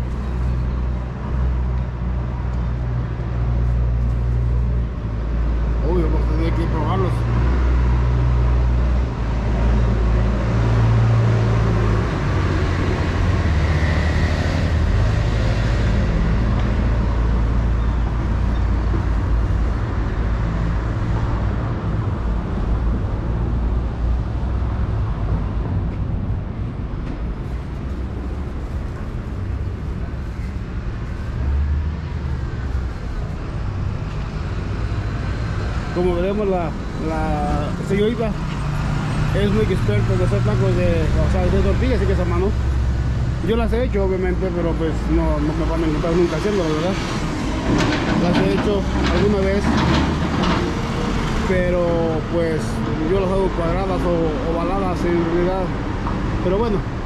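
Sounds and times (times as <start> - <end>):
low rumble of traffic: 0.0 - 57.0.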